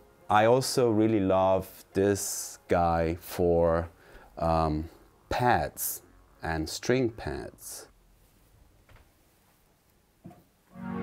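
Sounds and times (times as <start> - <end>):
synth string pad chord: 0.0 - 3.8, 10.7 - 11.0.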